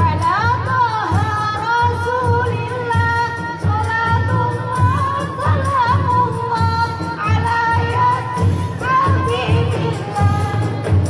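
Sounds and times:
frame drums beating: 0.0 - 11.0
women singing in unison: 0.0 - 11.0.

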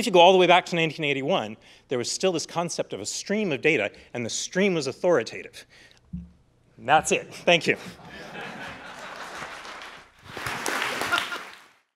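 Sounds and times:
audience applauding: 8.2 - 11.9.

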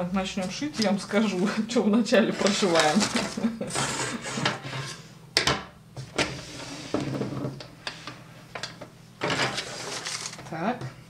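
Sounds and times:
fabric and paper rustling: 2.3 - 3.6, 9.3 - 10.5.

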